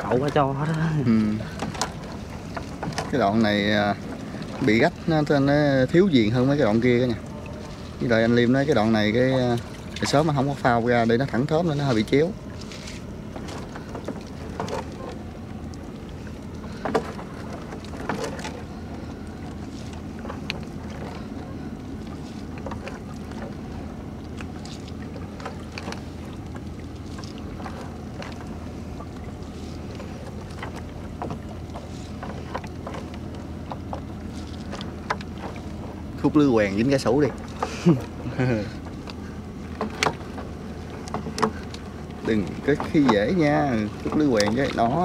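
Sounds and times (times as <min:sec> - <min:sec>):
net hauled from water: 0:00.0 - 0:45.0
steady low hum: 0:00.0 - 0:45.0.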